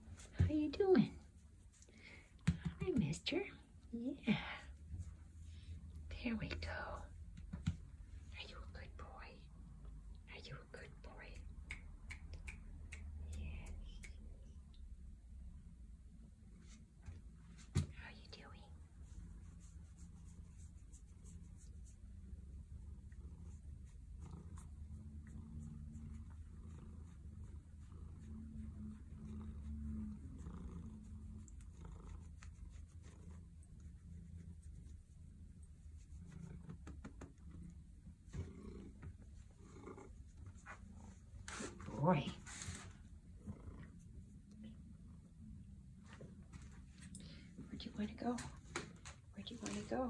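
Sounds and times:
soft whispering: 0.0s - 11.8s, 12.4s - 15.2s, 16.3s - 50.0s
cat purring: 13.8s - 50.0s.

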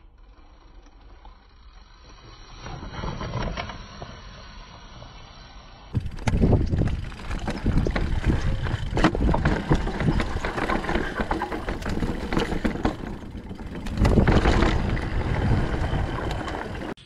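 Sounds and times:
bike clicking and rattling: 5.9s - 17.0s
bike tyres crunching on dirt: 5.9s - 17.0s
wind rumble on microphone: 5.9s - 17.0s.

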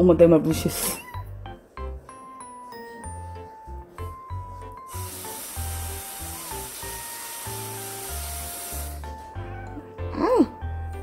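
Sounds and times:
cute background music: 0.0s - 11.0s
rustling hiss: 4.9s - 9.0s.

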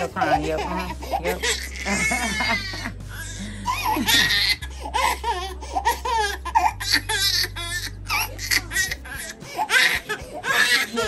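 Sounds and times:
adults laughing: 0.0s - 6.8s, 8.0s - 11.0s
infant crying: 0.2s - 11.0s.

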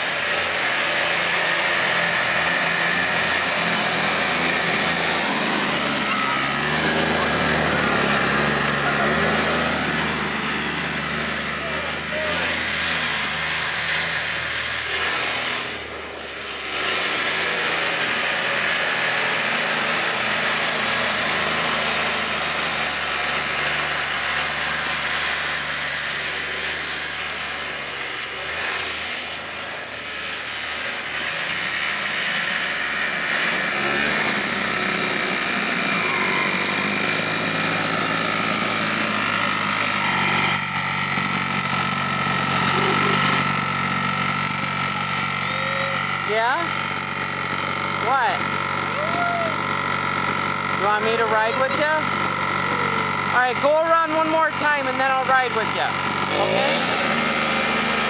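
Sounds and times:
snowmobile engine running: 0.0s - 58.0s.

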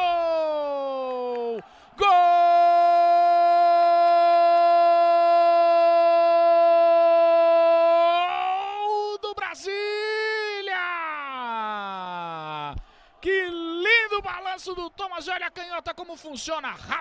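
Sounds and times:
sports commentator shouting: 0.0s - 17.0s.

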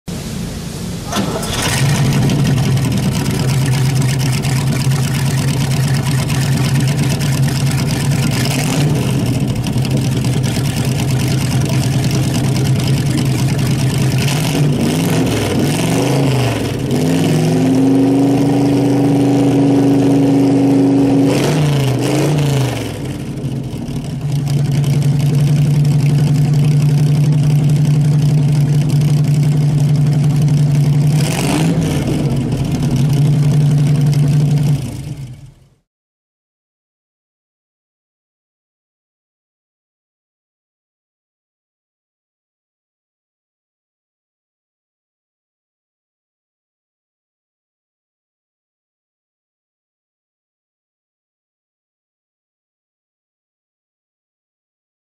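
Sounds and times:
car engine idling and revving: 0.1s - 35.8s.

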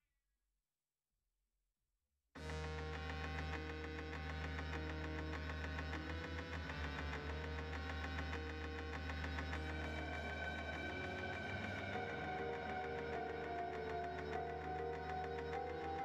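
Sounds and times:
electronic synthesizer music: 2.4s - 16.0s.

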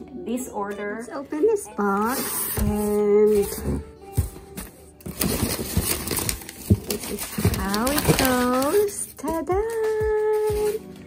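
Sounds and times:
packing paper crinkling: 4.6s - 11.0s.

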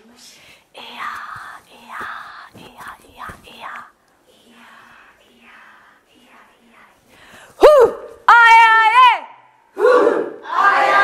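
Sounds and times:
whispered chanting: 0.0s - 7.8s.

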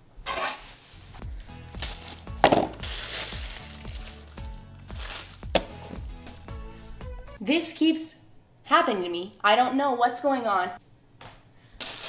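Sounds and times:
background music with a beat: 1.2s - 7.4s
plastic bag crinkling: 1.8s - 5.4s, 11.8s - 12.0s.

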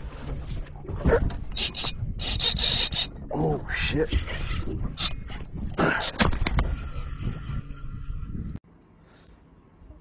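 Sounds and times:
low wind rumble: 0.0s - 10.0s.

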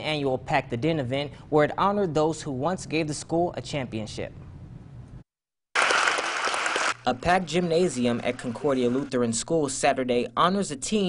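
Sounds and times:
crowd applauding: 5.8s - 9.1s.

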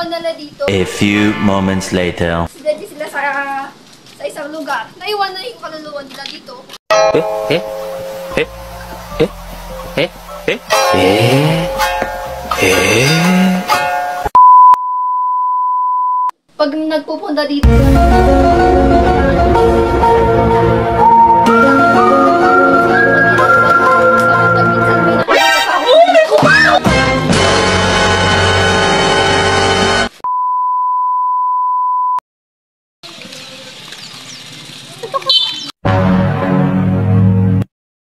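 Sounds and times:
music: 7.0s - 14.3s, 17.6s - 30.1s, 35.9s - 37.7s
steady test tone beep: 14.4s - 16.3s, 30.3s - 32.2s.

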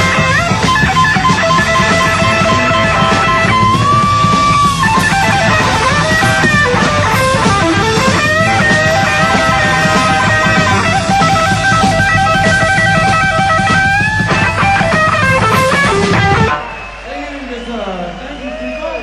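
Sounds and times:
electric guitar lead: 0.0s - 17.1s
bass and drums: 0.0s - 19.0s.

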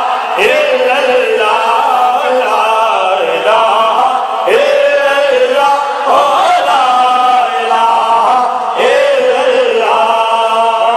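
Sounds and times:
men chanting together: 0.0s - 10.9s.

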